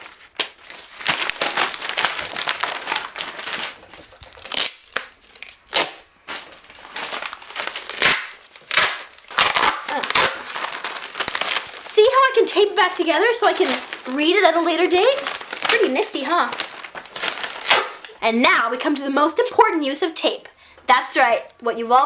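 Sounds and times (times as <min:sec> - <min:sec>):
magazine paper tearing and crumpling: 0:00.0 - 0:18.2.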